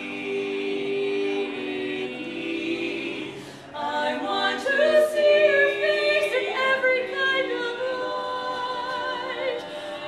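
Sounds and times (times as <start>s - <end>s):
women singing in close harmony: 0.0s - 10.0s.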